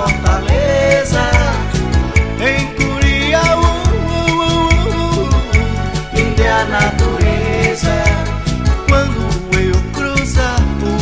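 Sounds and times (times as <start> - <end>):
pop song with steady beat: 0.0 - 11.0.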